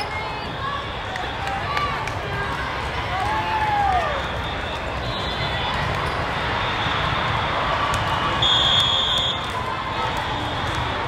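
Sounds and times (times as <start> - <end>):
hubbub of a large hall: 0.0 - 11.0
referee's whistle blown: 8.4 - 9.5.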